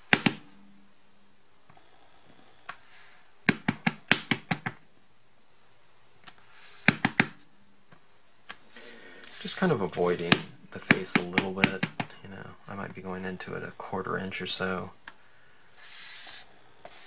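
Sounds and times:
rubber stamp knocking on table: 0:03.5 - 0:04.8, 0:06.9 - 0:07.4
stamp tapping on ink pad: 0:06.8 - 0:07.4.

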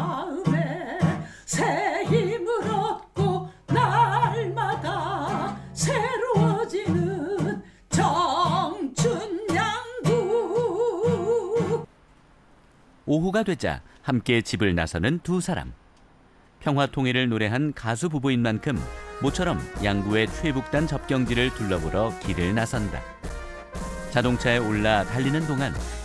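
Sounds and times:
woman singing with vibrato: 0:00.0 - 0:11.9
strummed acoustic guitar: 0:00.4 - 0:10.7.

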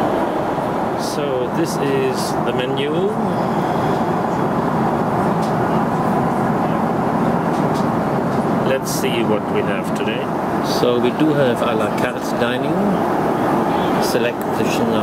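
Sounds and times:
airliner cabin noise: 0:00.0 - 0:15.0.

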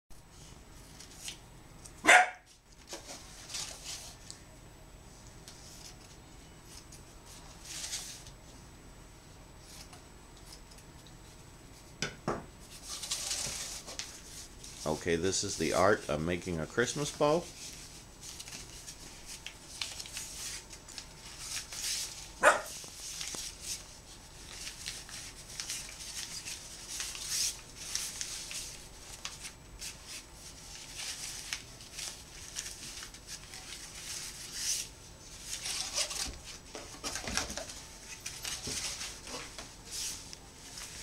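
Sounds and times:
dog barking: 0:02.0 - 0:02.5, 0:22.4 - 0:22.7
ribbon rustling being folded: 0:12.6 - 0:41.0.

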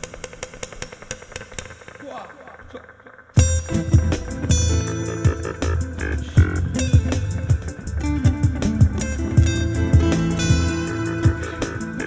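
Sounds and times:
muted acoustic guitar strums: 0:03.4 - 0:12.0.

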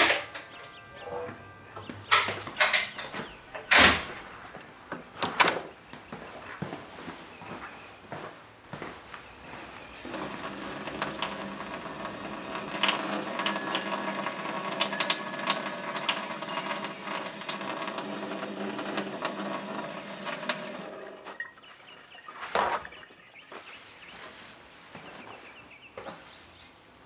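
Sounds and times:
steady mechanical sound: 0:09.8 - 0:21.0
held high tones: 0:09.8 - 0:21.2.

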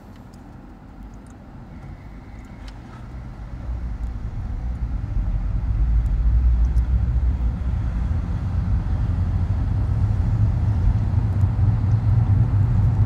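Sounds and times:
car rumble from inside cabin: 0:00.0 - 0:13.0.

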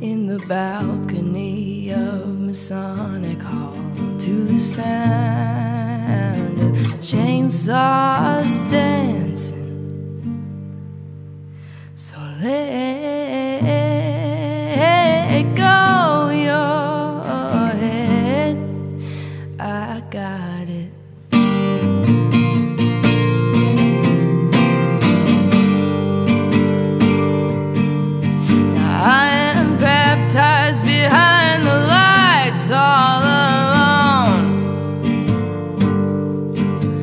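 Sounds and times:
woman singing: 0:00.0 - 0:10.0, 0:11.9 - 0:21.3, 0:28.2 - 0:35.0
acoustic guitar strumming: 0:00.0 - 0:12.0, 0:12.7 - 0:37.0.

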